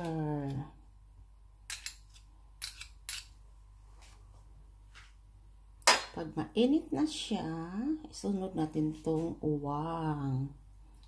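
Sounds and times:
metal spoon scraping ceramic spoon: 1.7s - 3.4s.

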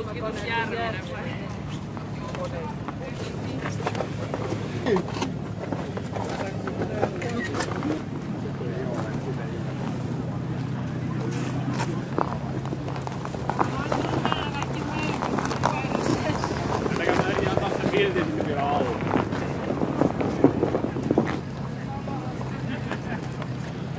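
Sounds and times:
people talking indistinctly: 0.0s - 23.9s.

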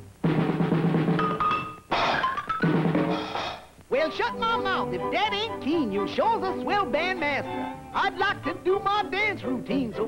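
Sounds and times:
cartoon band drums and percussion: 0.2s - 3.8s.

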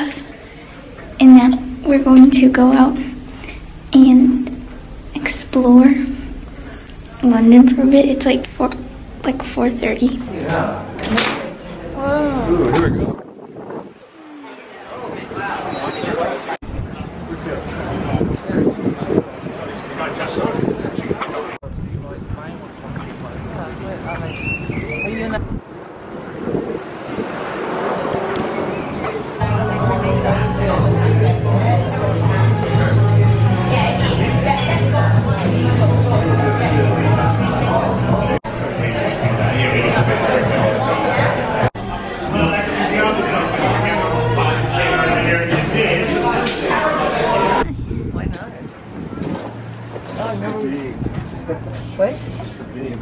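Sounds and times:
faint indistinct voices: 0.0s - 53.0s
wind buffeting microphone: 1.7s - 29.4s, 47.6s - 51.8s.

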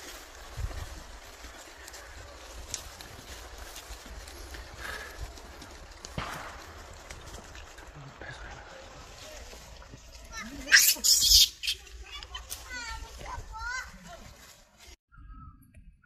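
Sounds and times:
faint monkey calls: 10.6s - 11.9s.

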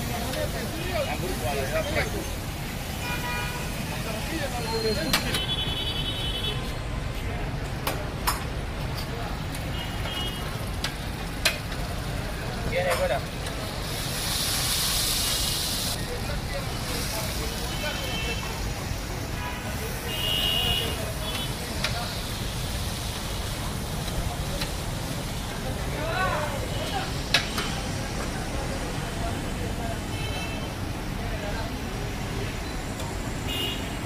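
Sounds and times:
liver sizzling in hot oil: 13.7s - 18.6s, 21.2s - 25.9s.

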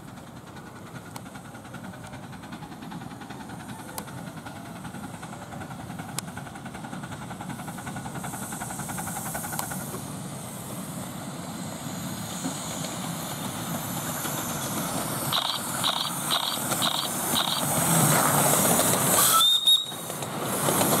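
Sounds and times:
miniature steam locomotive passing: 0.0s - 21.0s
steam hiss: 0.0s - 21.0s
sharp clicks: 15.3s - 17.7s.

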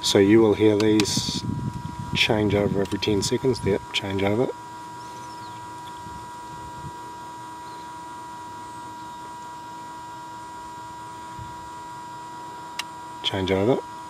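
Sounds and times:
electrical hum with high tone: 0.0s - 14.0s.

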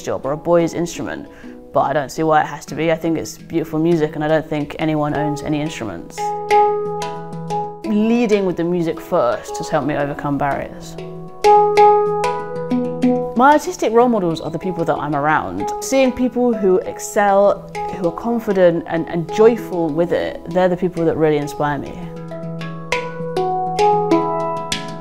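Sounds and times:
handpan notes ringing: 3.4s - 25.0s.

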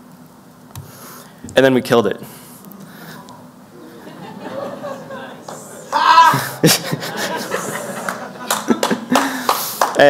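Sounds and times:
audience laughing: 3.7s - 9.6s
man laughing close to microphone: 3.8s - 9.4s
scattered clapping: 5.4s - 6.0s, 8.0s - 10.0s.

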